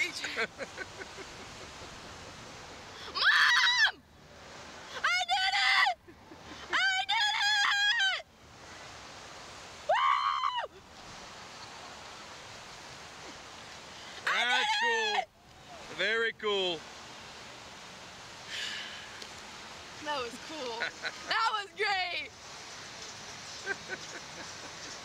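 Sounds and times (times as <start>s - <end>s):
steady rushing hiss: 0.0s - 25.0s
riders screaming: 3.0s - 4.0s, 9.9s - 10.8s, 14.2s - 15.8s.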